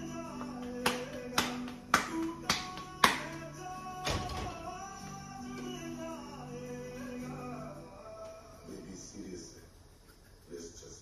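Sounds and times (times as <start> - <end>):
hands slapping dough: 0.4 - 3.5.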